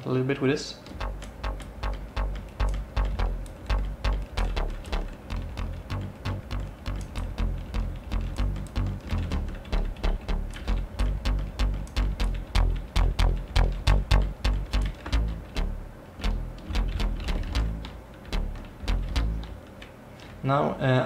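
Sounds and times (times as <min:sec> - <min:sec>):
distorted synth bass notes: 0:00.9 - 0:19.6.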